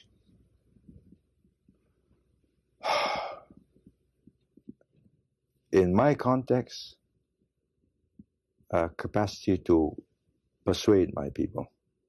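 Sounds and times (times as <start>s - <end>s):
man breathing in: 2.8s - 3.6s.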